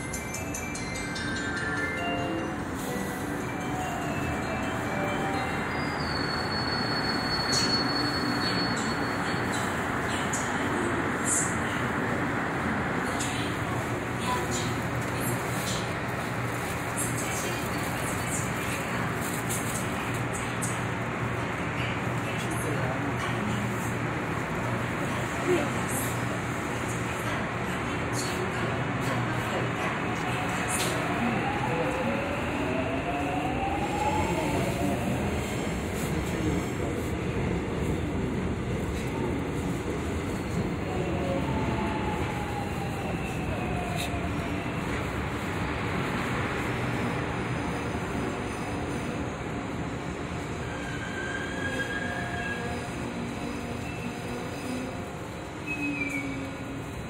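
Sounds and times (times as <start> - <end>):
electric train humming: 0.0 - 17.6, 23.1 - 57.0.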